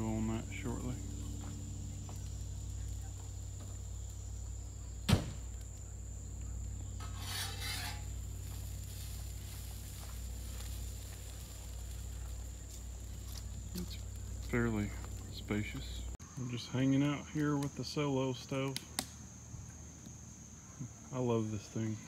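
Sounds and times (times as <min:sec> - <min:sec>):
generator humming: 0:00.0 - 0:07.2.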